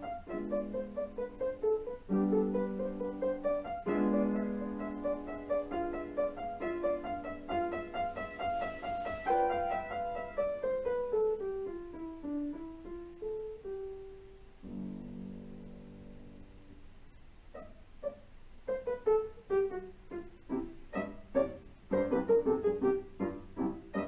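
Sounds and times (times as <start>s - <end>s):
piano music: 0.0s - 24.0s.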